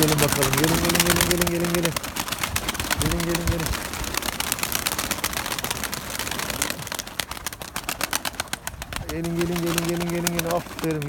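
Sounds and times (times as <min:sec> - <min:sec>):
pigeon wings flapping: 0:00.0 - 0:11.0.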